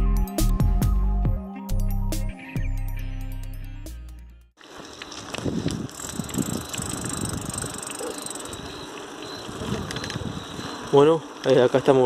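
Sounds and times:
background music: 0:00.0 - 0:04.5
bicycle rattling over paving bricks: 0:04.6 - 0:12.0
thin steady high tone: 0:06.3 - 0:11.2.

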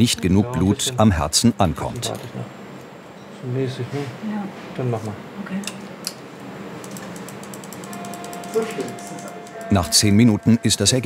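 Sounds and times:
mri scanner hum: 0:06.3 - 0:11.0
rapid even clicking: 0:06.8 - 0:08.6.

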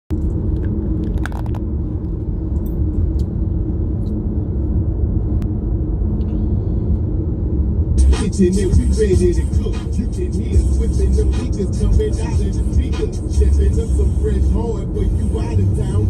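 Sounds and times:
car cabin road and engine rumble: 0:00.1 - 0:16.0.

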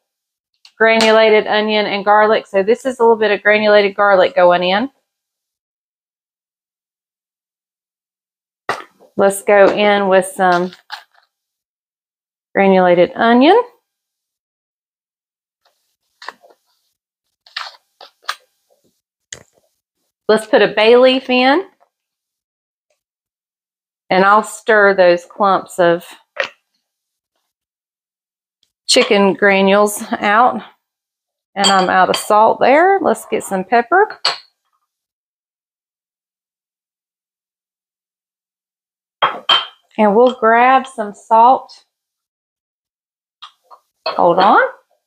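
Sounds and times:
spoon clinking on ceramic pot: 0:39.2 - 0:40.4.

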